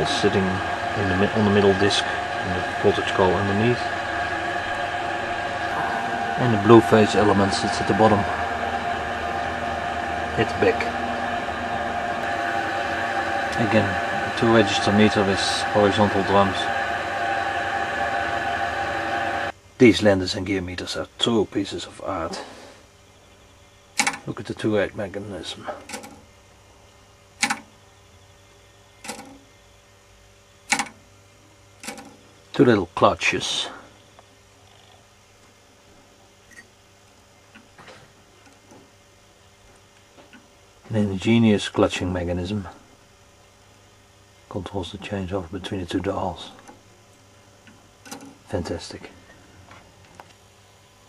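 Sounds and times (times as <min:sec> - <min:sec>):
electrical mains hum with whining: 0:00.0 - 0:51.0
sharp mechanical clicks: 0:24.0 - 0:24.2, 0:27.4 - 0:27.7, 0:29.0 - 0:29.4, 0:30.7 - 0:31.0, 0:31.8 - 0:32.2.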